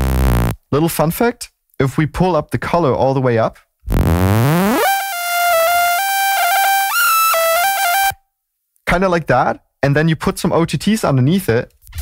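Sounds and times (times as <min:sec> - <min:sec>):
buzzy synth bass sweeping: 0:00.0 - 0:00.6, 0:03.9 - 0:08.2.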